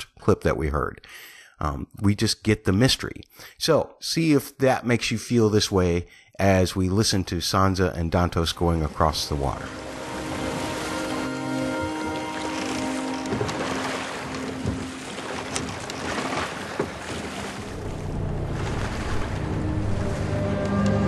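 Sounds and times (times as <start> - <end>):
water and rowing boat: 8.2 - 21.0
dark dissonant score music: 8.5 - 16.3, 17.5 - 21.0.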